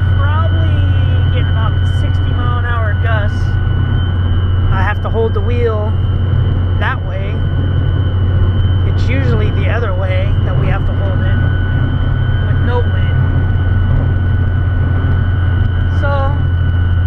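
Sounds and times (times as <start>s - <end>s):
engine and road drone: 0.0s - 17.0s.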